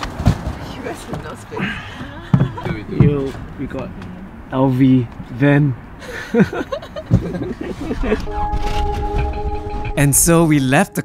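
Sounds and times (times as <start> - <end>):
vehicle interior rumble: 0.0 - 10.6
people talking: 0.6 - 5.8, 10.0 - 11.0
low thumps: 1.9 - 6.0, 7.0 - 10.8.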